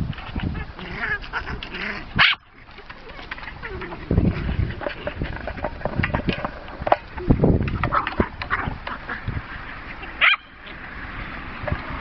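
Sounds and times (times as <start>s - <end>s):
dog barking: 2.2s - 2.4s, 10.2s - 10.5s.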